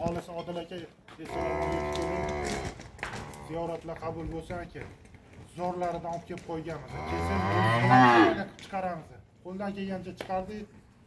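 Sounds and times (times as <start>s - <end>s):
cow mooing: 1.3s - 3.5s, 6.9s - 8.5s.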